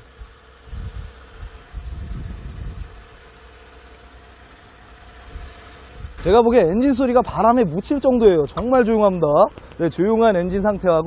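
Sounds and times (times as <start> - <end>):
quiet car engine idling: 0.0 - 11.0
wind gusting on microphone: 0.7 - 3.1.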